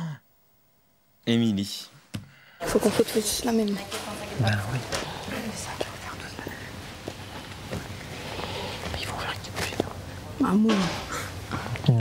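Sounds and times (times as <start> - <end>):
people whispering: 4.4 - 6.9, 7.7 - 12.0.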